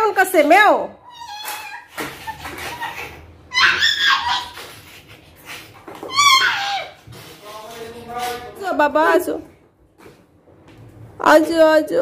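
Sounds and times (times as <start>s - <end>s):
toddler whining: 1.0s - 2.0s, 2.8s - 4.6s, 6.0s - 7.1s.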